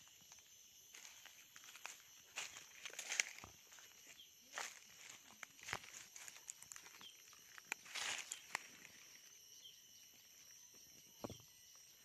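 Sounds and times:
footsteps on dry leaves: 0.9s - 9.0s.

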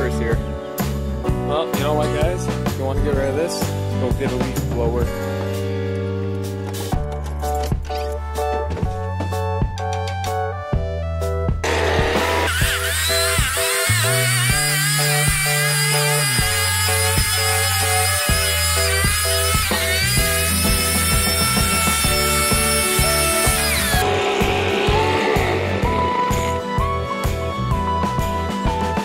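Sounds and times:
background music with beat: 0.0s - 13.6s, 18.3s - 29.0s
leaf blower whining: 11.6s - 26.6s.

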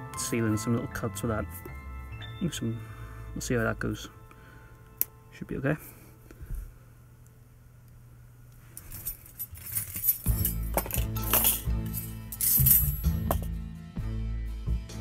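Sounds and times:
background music: 0.0s - 6.0s, 10.0s - 15.0s
metal tools clinking: 8.8s - 13.5s.

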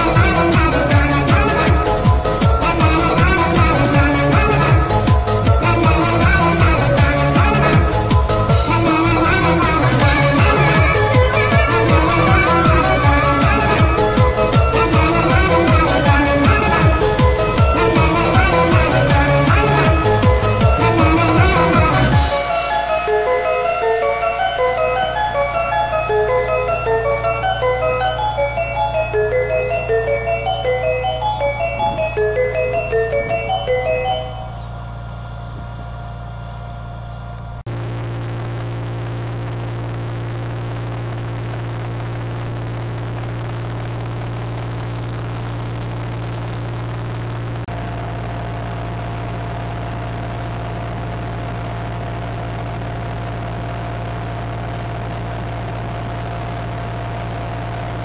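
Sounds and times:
tractor diesel engine running: 0.0s - 38.6s
music of short bright notes: 22.2s - 34.8s.

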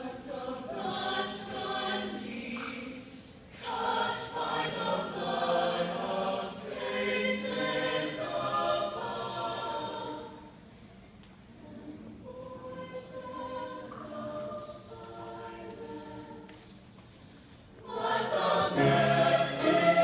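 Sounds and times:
choir singing in parts: 0.0s - 10.6s, 11.6s - 16.8s, 17.8s - 20.0s.

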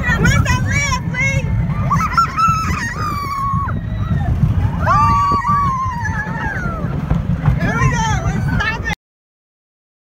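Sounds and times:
roller coaster car rumbling: 0.0s - 9.0s
wind rumble on microphone: 0.0s - 9.0s
riders screaming: 1.7s - 7.8s.

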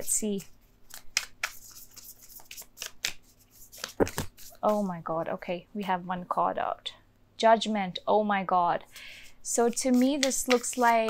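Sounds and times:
cards being shuffled: 0.4s - 4.9s, 9.7s - 11.0s.

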